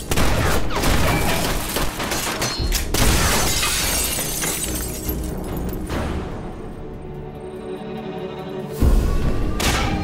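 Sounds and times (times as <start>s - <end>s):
glass windows shattering: 3.1s - 5.4s.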